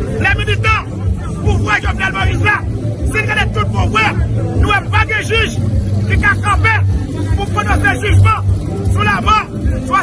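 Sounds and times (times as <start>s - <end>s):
crowd babble: 0.0s - 10.0s
man speaking loudly: 0.1s - 10.0s.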